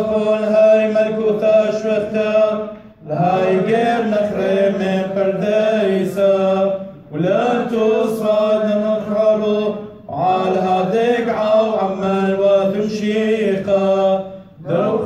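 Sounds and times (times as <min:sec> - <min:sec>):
men chanting a hymn: 0:00.0 - 0:15.0.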